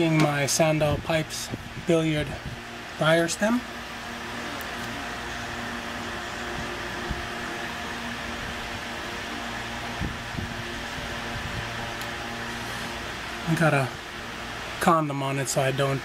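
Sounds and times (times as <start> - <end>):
motor humming: 0.0 - 16.0.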